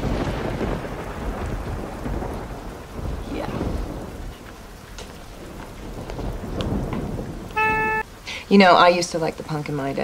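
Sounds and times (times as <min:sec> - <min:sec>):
dense rain-like noise: 0:00.0 - 0:10.0.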